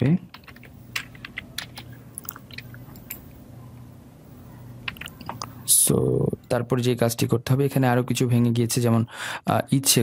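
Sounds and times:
keyboard keys clicking: 0:00.3 - 0:03.2, 0:04.8 - 0:05.6.

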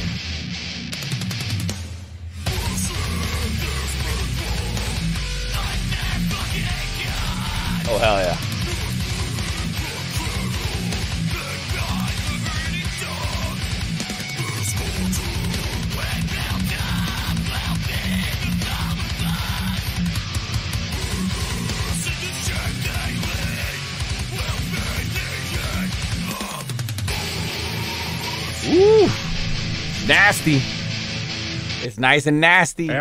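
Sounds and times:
heavy metal song: 0:00.0 - 0:33.0.

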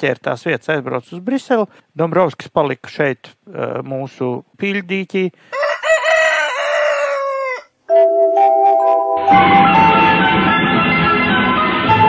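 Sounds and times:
rooster crowing: 0:05.5 - 0:07.8.

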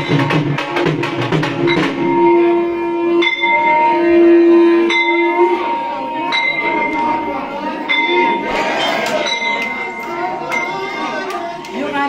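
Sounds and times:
bell ringing: 0:00.0 - 0:00.8, 0:01.4 - 0:12.0
steady held musical note: 0:00.0 - 0:12.0.

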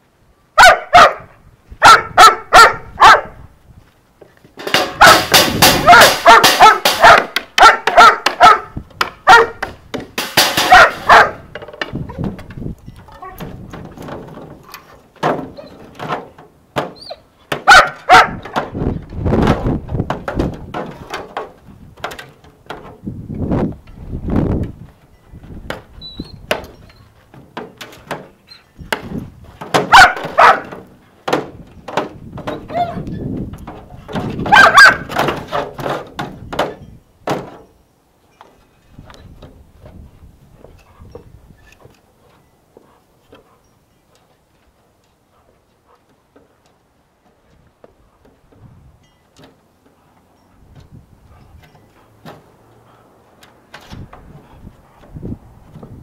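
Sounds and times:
dog barking in quick bursts: 0:00.6 - 0:03.4, 0:05.0 - 0:09.6, 0:10.6 - 0:11.5, 0:17.6 - 0:18.4, 0:29.9 - 0:30.8, 0:34.5 - 0:35.1
thuds: 0:04.5 - 0:12.7, 0:13.4 - 0:23.0, 0:25.4 - 0:37.7.

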